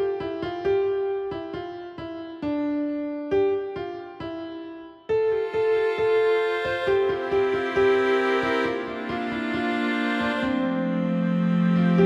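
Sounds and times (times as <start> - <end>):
soft piano melody: 0.0 - 12.0.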